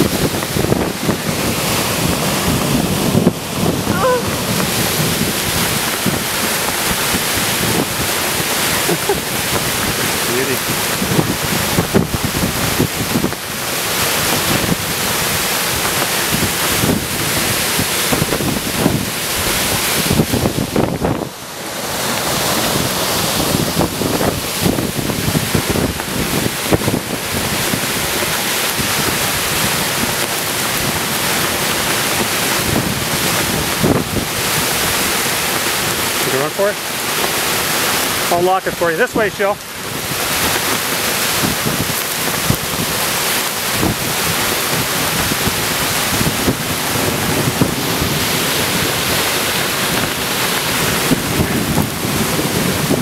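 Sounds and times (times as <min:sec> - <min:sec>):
driving rain: 0:00.0 - 0:53.0
gusty wind buffeting microphone: 0:00.0 - 0:53.0.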